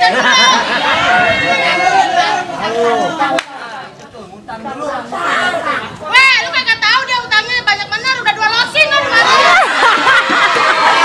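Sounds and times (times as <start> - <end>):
people talking: 0.0 - 10.8.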